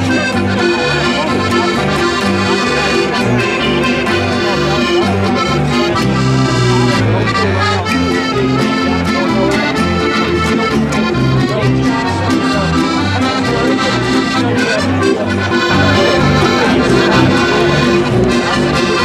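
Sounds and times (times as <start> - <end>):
lively accordion tune: 0.0 - 19.0.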